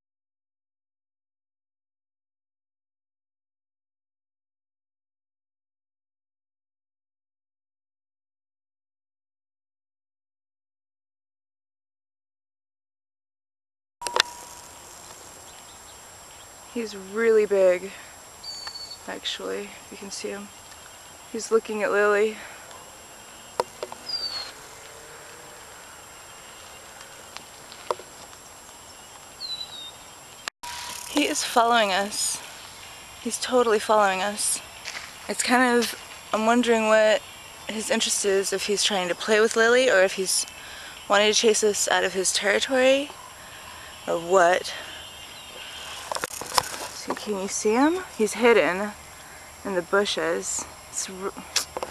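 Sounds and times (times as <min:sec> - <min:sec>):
outdoor background noise: 0:14.0 - 0:51.9
bird whistles: 0:18.4 - 0:19.1, 0:24.1 - 0:24.6.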